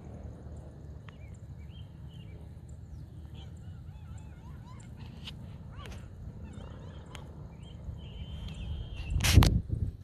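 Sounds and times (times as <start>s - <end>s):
geese honking: 3.2s - 9.0s.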